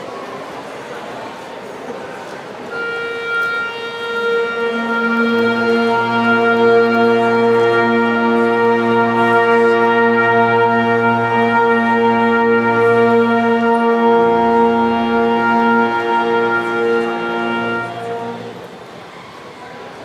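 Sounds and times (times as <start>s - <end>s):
wind band sustained chord: 2.7s - 18.9s.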